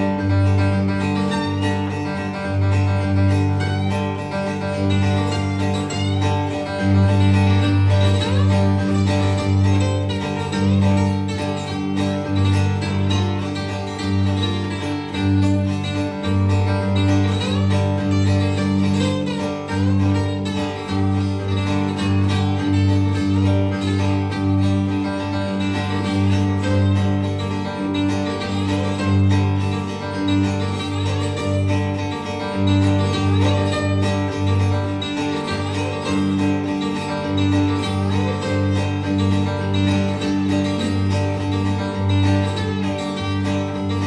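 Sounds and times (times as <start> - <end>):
fingerpicked acoustic guitar: 0.0 - 44.0.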